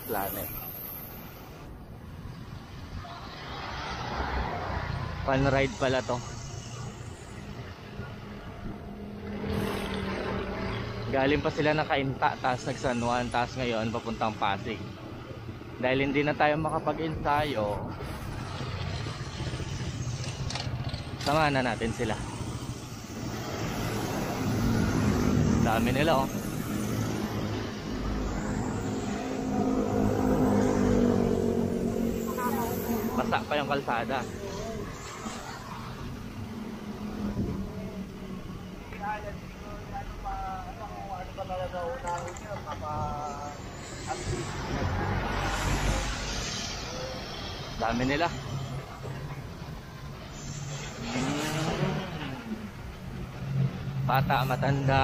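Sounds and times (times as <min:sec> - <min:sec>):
tyres hissing on wet road: 0:21.6 - 0:41.8, 0:43.1 - 0:55.0
wind rumble on microphone: 0:37.0 - 0:38.0.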